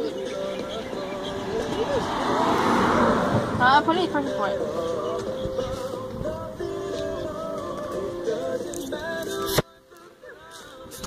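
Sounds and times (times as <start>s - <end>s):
car passing close by: 0.7s - 6.1s.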